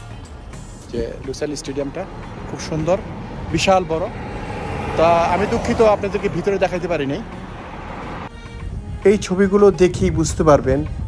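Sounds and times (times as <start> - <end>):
highway traffic rushing: 0.0 - 9.9
man talking: 0.9 - 4.2, 4.9 - 7.3.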